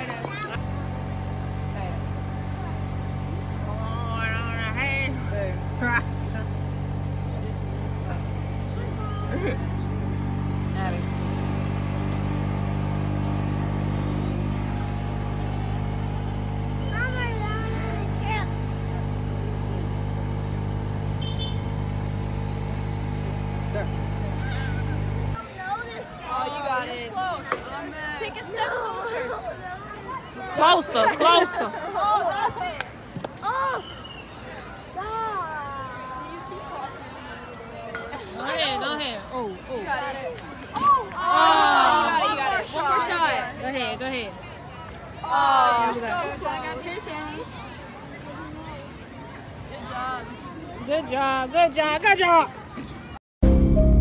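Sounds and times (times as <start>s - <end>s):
faint voices: 0.0s - 53.2s
low mechanical hum: 0.6s - 25.4s.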